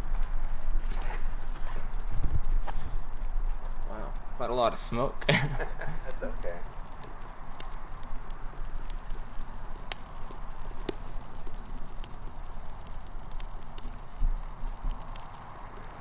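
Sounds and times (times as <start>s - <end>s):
burning wood popping and crackling: 0.0s - 16.0s
rushing hiss of flames: 0.0s - 16.0s.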